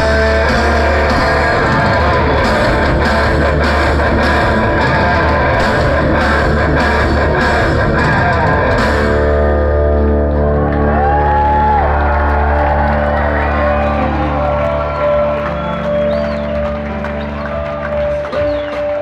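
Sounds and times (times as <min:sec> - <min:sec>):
crowd whooping and cheering: 0:00.0 - 0:03.2, 0:10.2 - 0:19.0
heavy guitar playing: 0:00.0 - 0:19.0.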